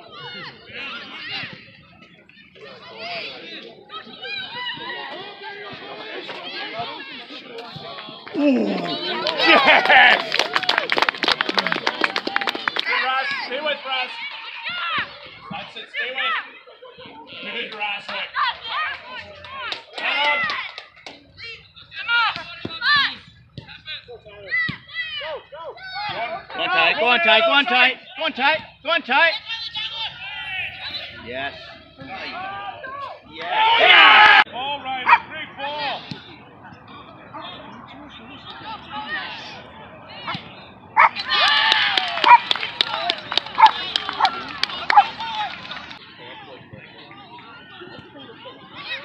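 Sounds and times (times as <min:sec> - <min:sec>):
spectators yelling and cheering: 0:02.6 - 0:16.6, 0:29.3 - 0:36.0, 0:38.6 - 0:49.0
hand claps: 0:09.2 - 0:12.9, 0:41.4 - 0:46.0.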